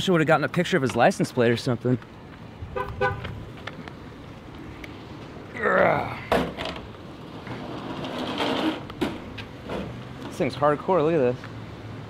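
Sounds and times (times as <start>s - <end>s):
parking lot background noise: 0.0s - 12.0s
car horn toots: 2.8s - 3.3s.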